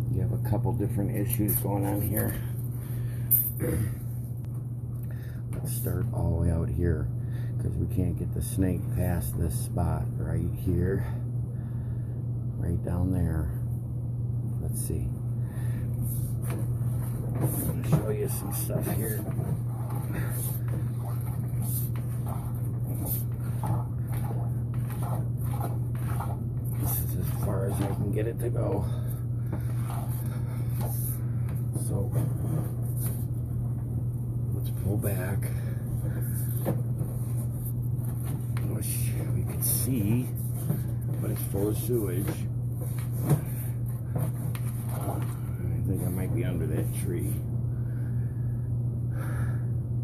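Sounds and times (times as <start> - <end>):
low machine hum: 0.0 - 50.0
cable rubbing and scraping: 16.0 - 33.6, 34.6 - 47.4.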